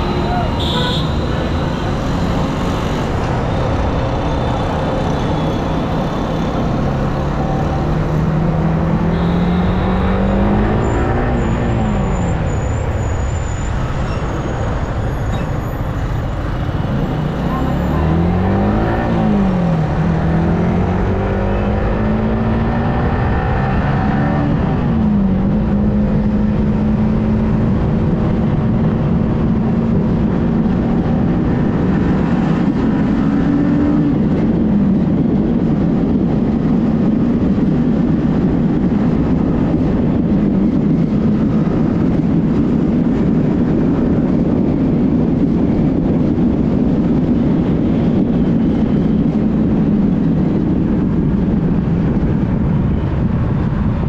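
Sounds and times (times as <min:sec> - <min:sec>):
wind rush on microphone: 0:00.0 - 0:54.0
motorcycle engine accelerating: 0:16.5 - 0:54.0.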